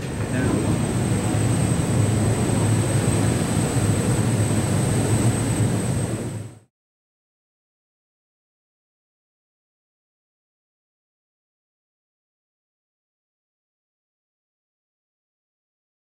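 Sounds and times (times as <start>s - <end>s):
air handling units humming: 0.0s - 6.6s
thin high whine: 0.0s - 6.6s.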